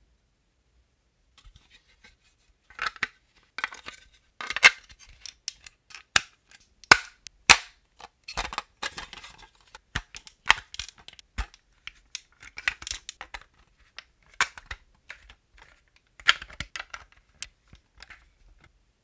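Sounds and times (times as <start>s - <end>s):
plastic toy pieces clicking: 10.0s - 11.5s, 12.1s - 13.5s.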